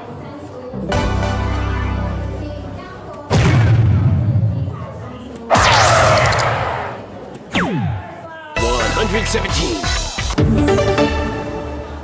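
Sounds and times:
electronic dartboard hit effects: 5.5s - 8.0s.

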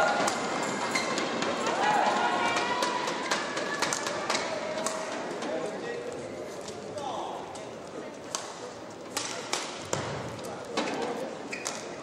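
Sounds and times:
crowd hubbub: 0.0s - 12.0s.

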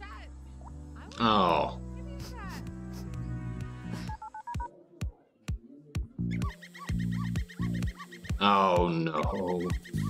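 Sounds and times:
background music: 0.0s - 10.0s
phone keypad touch-tone beeps: 4.1s - 4.7s.

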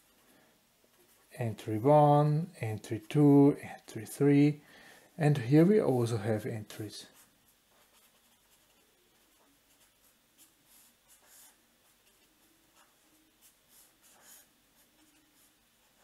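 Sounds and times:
felt-tip pen scratching on paper: 7.1s - 16.0s.

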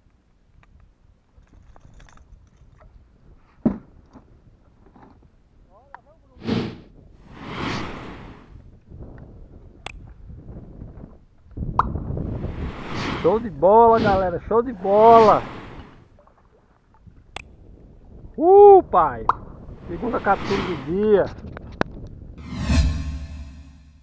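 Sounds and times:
water splashing: 12.5s - 16.8s.

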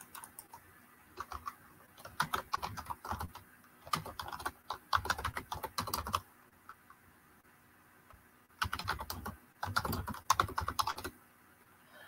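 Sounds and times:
typing on computer keyboard: 0.0s - 0.6s, 1.2s - 6.2s, 8.6s - 11.2s.

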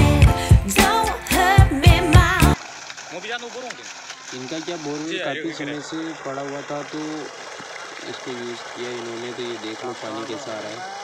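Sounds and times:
water gushing and splashing on ground: 2.3s - 11.0s
man talking: 3.1s - 7.3s, 8.0s - 10.9s.

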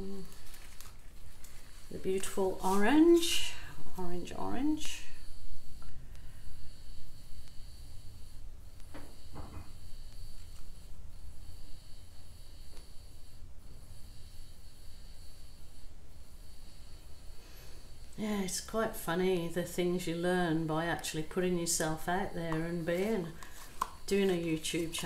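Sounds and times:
faint high steady tone: 0.0s - 25.0s.

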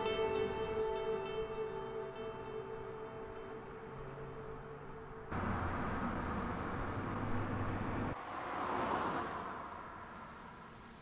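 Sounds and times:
car engine and tyre noise: 3.2s - 11.0s.

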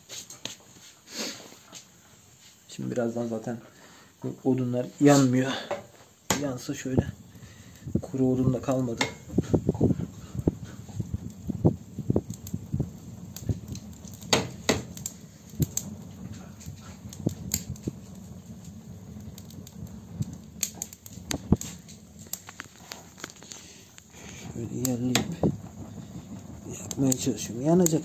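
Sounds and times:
logs knocking in a stove: 5.6s - 28.0s.

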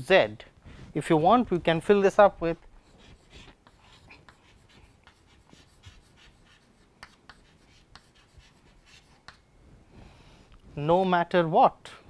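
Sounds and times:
chalk writing on chalkboard: 2.8s - 9.4s.

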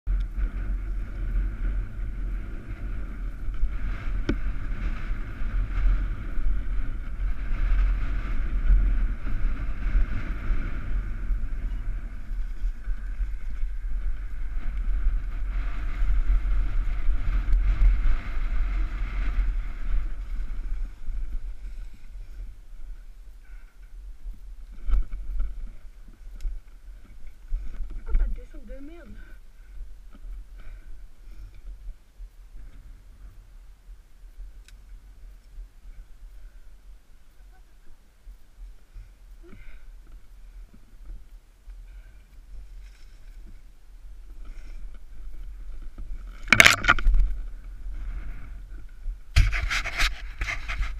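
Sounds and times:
bike rolling on grass: 0.1s - 37.4s, 38.2s - 50.9s
wind buffeting microphone: 0.1s - 50.9s.

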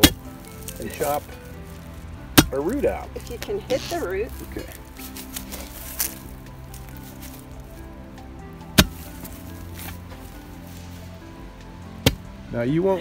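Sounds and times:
steel bar striking ground: 0.0s - 1.2s, 2.3s - 2.8s, 8.7s - 9.2s
background music with held tones: 0.0s - 13.0s.

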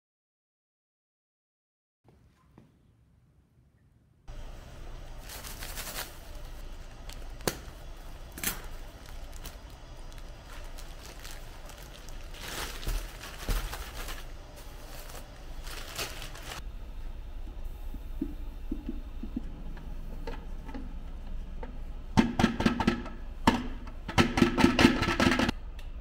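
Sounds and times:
low steady hum: 2.1s - 24.4s
plastic bag of foam beads rustling: 5.1s - 16.6s.

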